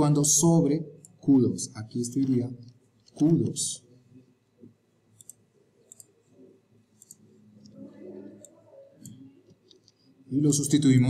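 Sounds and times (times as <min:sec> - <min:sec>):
faint computer mouse clicks: 0:05.2 - 0:06.2, 0:07.0 - 0:07.8.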